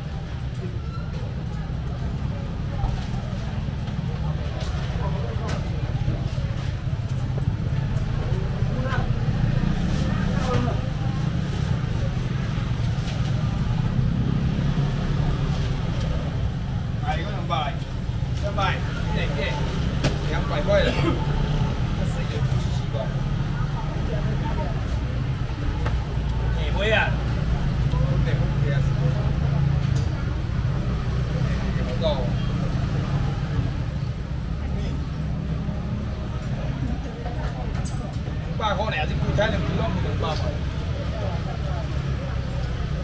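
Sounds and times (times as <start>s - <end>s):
indistinct chatter: 0.0s - 43.0s.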